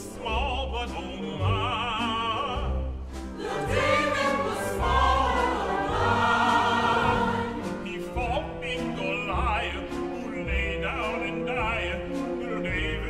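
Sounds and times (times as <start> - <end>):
baritone singing: 0.0 - 13.0
low orchestral bass pulses: 0.0 - 13.0
symphony orchestra: 0.0 - 13.0
chorus singing sustained chords: 3.4 - 8.0.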